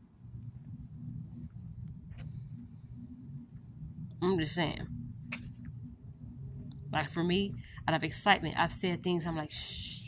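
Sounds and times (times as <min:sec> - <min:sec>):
low steady rumbling: 0:00.0 - 0:10.0.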